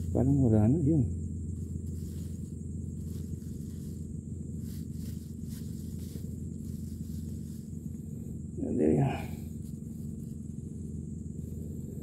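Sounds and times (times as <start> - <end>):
steady low rumble: 0.0 - 12.0
plastic bag rustling: 1.8 - 7.8.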